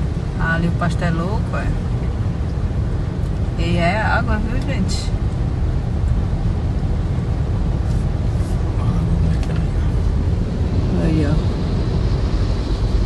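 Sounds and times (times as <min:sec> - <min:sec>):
car cabin rumble: 0:00.0 - 0:13.0.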